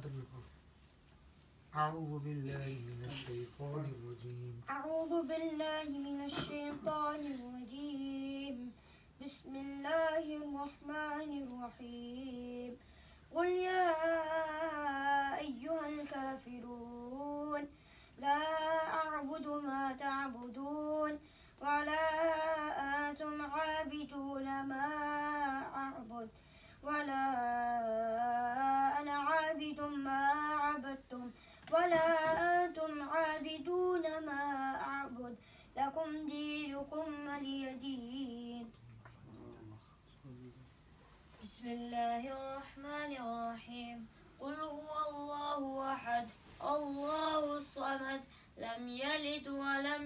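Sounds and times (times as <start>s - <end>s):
boy chanting melodically: 2.7s - 38.7s, 41.4s - 50.0s.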